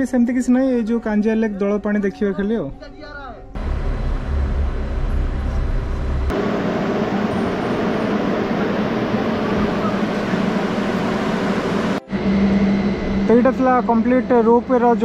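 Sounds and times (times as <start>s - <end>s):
cable car machinery hum: 3.6s - 15.0s.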